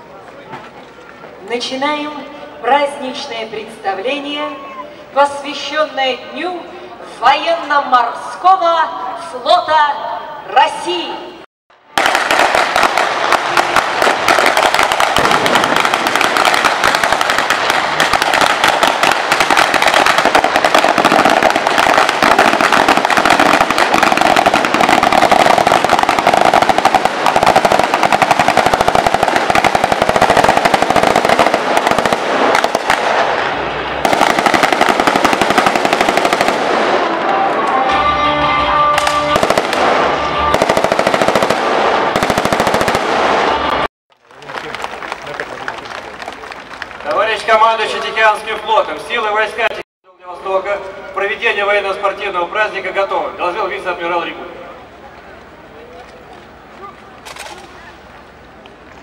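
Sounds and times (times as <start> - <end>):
automatic weapon fire: 12.0 - 37.2, 39.0 - 43.8.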